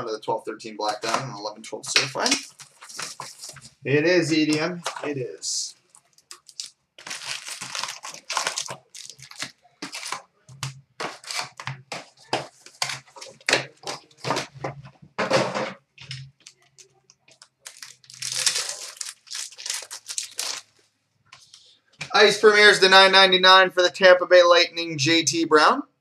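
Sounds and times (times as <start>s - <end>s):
card packs crinkling and rustling: 0.8s - 14.8s, 16.0s - 20.7s
wrapper tearing: 2.2s - 3.7s, 5.8s - 14.5s, 16.4s - 20.7s.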